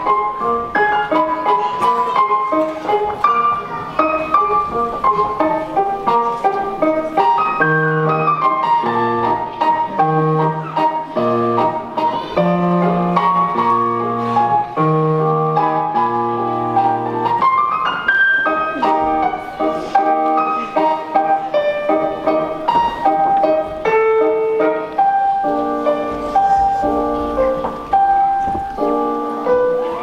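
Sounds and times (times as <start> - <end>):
piano music: 0.0 - 30.0.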